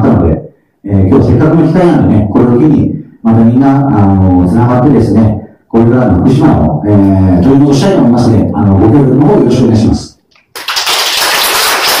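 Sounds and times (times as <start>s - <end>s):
audience applauding: 10.5s - 12.0s.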